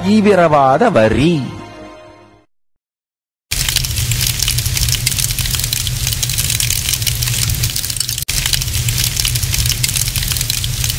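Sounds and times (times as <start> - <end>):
fire crackling: 3.5 - 10.9
low fire rumble: 3.5 - 10.9.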